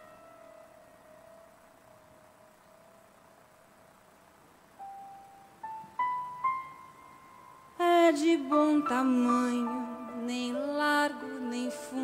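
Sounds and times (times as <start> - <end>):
faint piano notes: 0.0 - 12.0.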